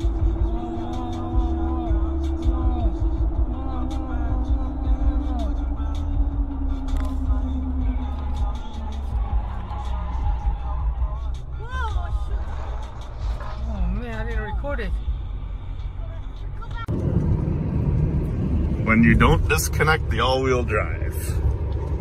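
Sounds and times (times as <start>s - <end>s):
vehicle road and engine rumble: 0.0s - 22.0s.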